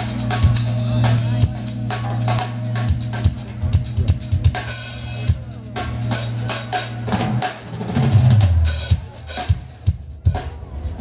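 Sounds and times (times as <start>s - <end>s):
electric bass line: 0.0s - 7.1s
jazz-funk band playing: 0.0s - 11.0s.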